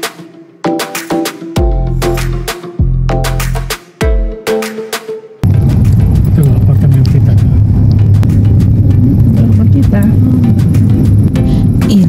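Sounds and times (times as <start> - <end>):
car engine and tyres rumbling: 5.4 - 11.7.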